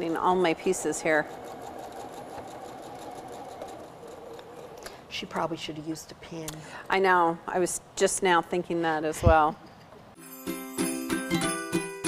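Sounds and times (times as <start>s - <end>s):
sewing machine running: 0.0s - 4.9s.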